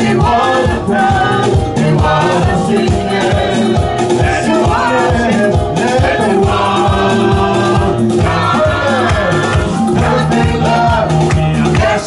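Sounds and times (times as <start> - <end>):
keyboard accompaniment: 0.0 - 12.0
person singing into a microphone: 0.0 - 12.0
hands clapping to a beat: 7.7 - 12.0.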